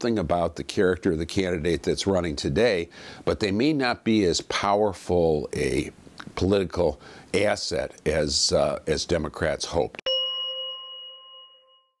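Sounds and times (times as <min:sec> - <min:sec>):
bright chime: 0:10.1 - 0:12.0.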